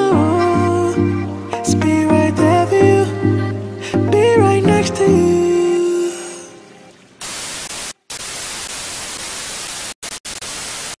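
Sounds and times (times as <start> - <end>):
television static hiss: 5.6 - 11.0.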